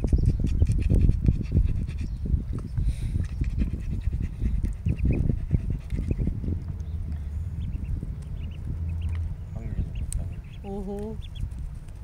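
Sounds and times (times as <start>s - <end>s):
ducklings pecking at feed: 0.0s - 12.0s
ducklings peeping: 0.0s - 12.0s.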